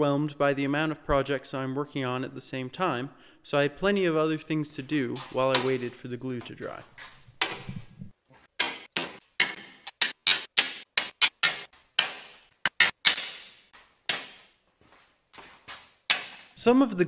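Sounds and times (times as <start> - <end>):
sharp wooden clacks: 7.3 - 14.5, 16.1 - 16.6.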